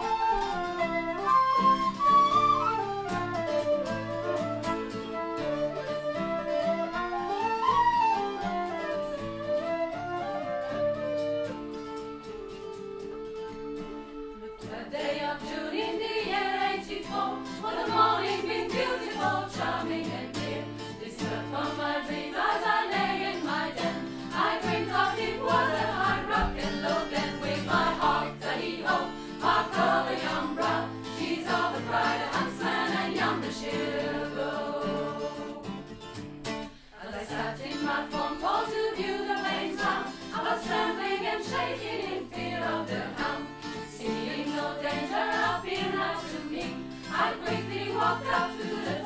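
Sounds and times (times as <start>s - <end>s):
acoustic guitar: 0.0s - 49.0s
women's choir singing in harmony: 13.8s - 36.0s, 36.8s - 49.0s.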